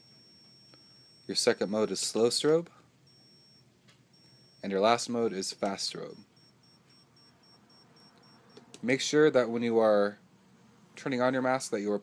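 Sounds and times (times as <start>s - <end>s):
high-pitched inverter beeps: 0.0s - 1.7s, 3.1s - 8.7s.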